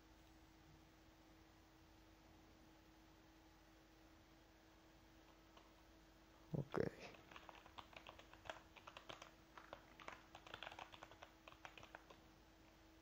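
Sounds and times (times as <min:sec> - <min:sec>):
faint keyboard typing: 0:05.2 - 0:05.9, 0:07.0 - 0:12.3.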